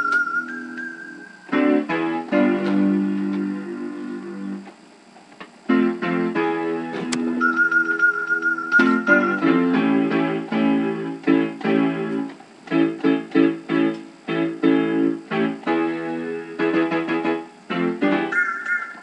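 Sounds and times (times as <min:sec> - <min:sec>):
piano chords ringing: 0:00.0 - 0:04.7, 0:05.6 - 0:19.0.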